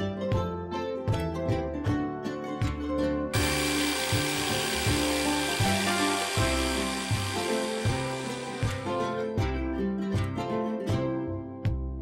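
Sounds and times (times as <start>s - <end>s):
plucked-string background music: 0.0s - 12.0s
power drill grinding: 3.4s - 9.0s.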